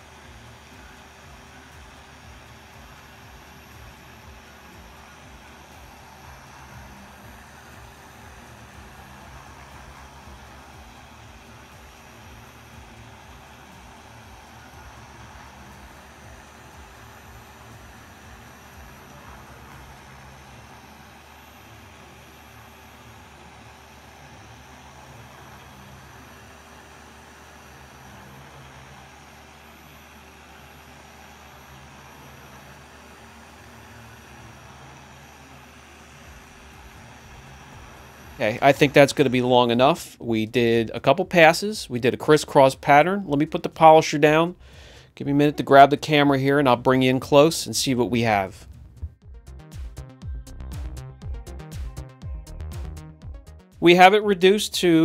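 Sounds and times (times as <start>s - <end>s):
polisher running: 0.0s - 51.9s.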